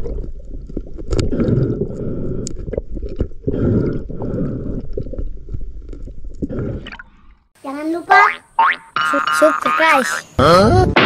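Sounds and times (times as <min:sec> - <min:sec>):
cartoon boing sound effects: 0:08.6 - 0:11.0.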